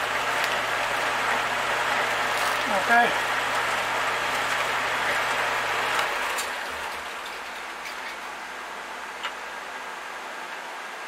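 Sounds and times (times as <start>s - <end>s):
power tool motor hum: 0.0s - 7.6s.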